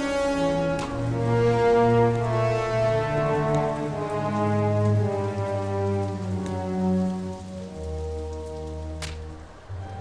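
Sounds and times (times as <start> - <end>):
heavy rain falling: 0.0 - 10.0
low orchestral brass chords: 0.0 - 10.0.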